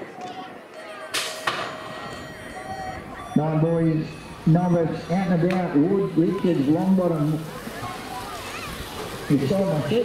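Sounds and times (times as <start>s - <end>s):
start gate clanging: 1.0s - 5.9s.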